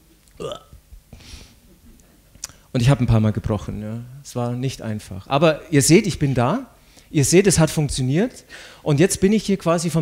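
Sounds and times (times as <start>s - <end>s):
faint breath: 8.5s - 8.8s.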